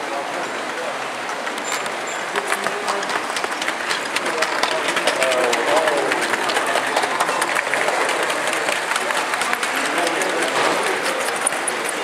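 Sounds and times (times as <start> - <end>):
model train wagons clattering: 0.0 - 12.0.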